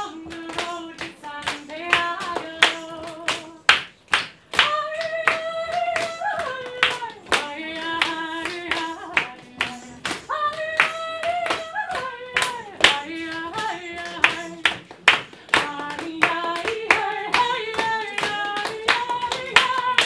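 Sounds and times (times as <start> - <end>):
woman singing a folk song: 0.0 - 3.6, 4.6 - 14.8, 15.4 - 20.0
audience hand claps: 0.0 - 20.0.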